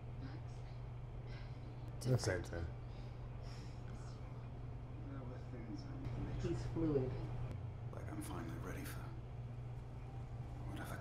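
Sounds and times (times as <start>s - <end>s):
low hum: 0.0s - 11.0s
half-whispered voices: 10.5s - 11.0s.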